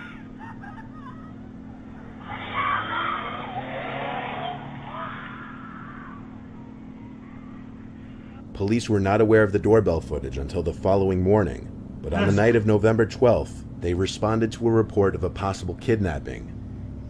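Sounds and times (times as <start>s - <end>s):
steady electrical hum: 0.0s - 17.0s
woman screaming: 0.9s - 7.5s
car driving past: 1.8s - 7.2s.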